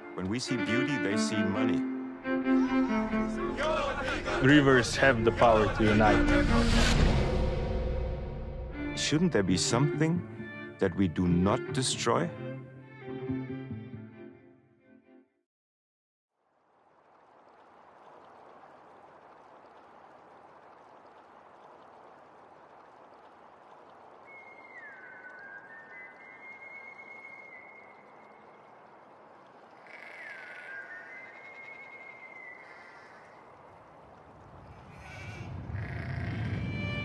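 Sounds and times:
low rumble: 0:03.3 - 0:09.0
outdoor ambience: 0:16.4 - 0:37.0
sheep bleating: 0:34.9 - 0:36.6.

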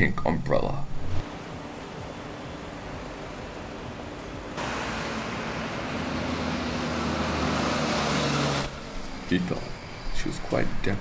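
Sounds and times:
low engine hum: 0:01.0 - 0:11.0
passing cars hissing: 0:01.3 - 0:11.0.

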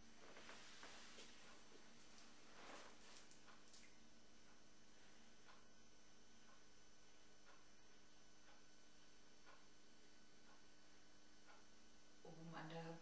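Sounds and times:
faint hiss and hum: 0:00.0 - 0:13.0
soft brushing sounds: 0:00.2 - 0:03.9.

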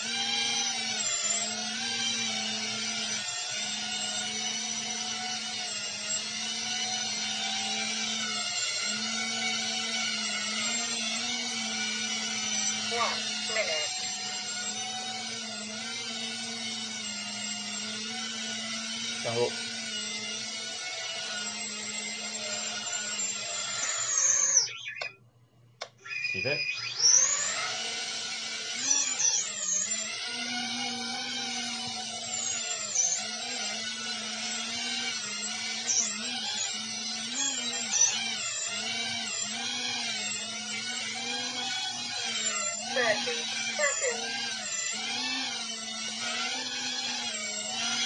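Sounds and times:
quadcopter motors whining: 0:00.0 - 0:25.2, 0:25.8 - 0:48.0.

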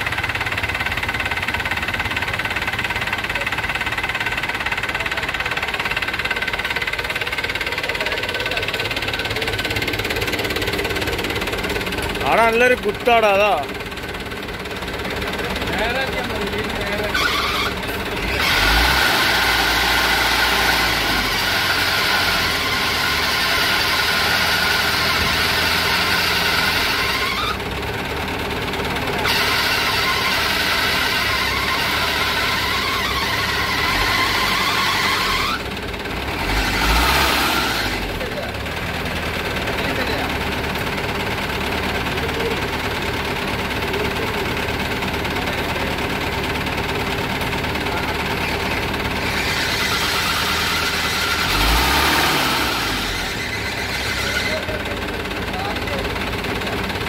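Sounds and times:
tractor diesel engine revving: 0:00.0 - 0:57.0.

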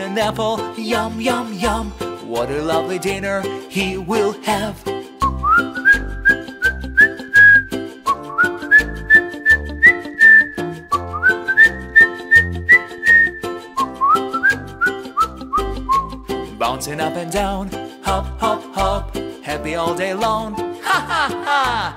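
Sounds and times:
children's song instrumental backing: 0:00.0 - 0:21.9
whistled melody: 0:05.2 - 0:17.5.

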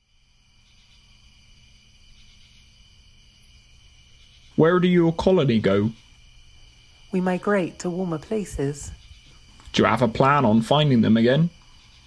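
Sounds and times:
crickets chirring: 0:00.0 - 0:12.0
low steady hum: 0:00.0 - 0:12.0.

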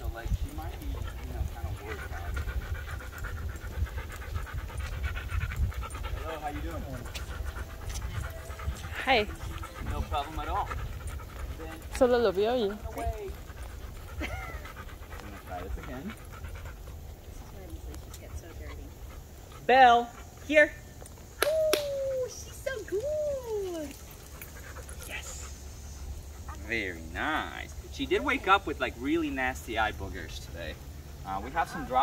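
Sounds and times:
low rumble on microphone: 0:00.0 - 0:19.4
dog panting: 0:00.0 - 0:21.4, 0:22.2 - 0:32.0.

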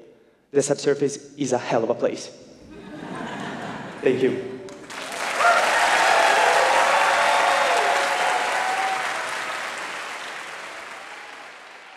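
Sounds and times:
audience applauding: 0:04.7 - 0:11.9.

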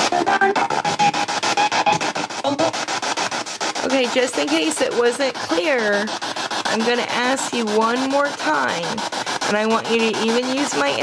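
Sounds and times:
choppy radio static: 0:00.0 - 0:11.0
radio sweeping through stations: 0:00.0 - 0:11.0.

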